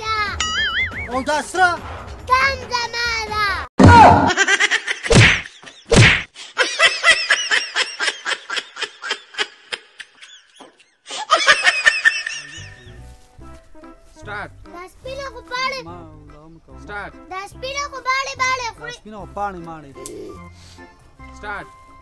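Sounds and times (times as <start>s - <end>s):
comedy whacks: 3.8s - 4.4s, 5.0s - 6.4s.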